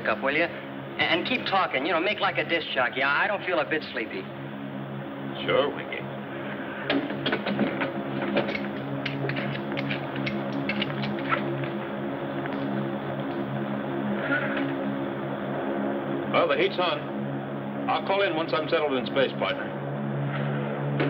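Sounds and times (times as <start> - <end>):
rocket ship engine hum: 0.0 - 21.0.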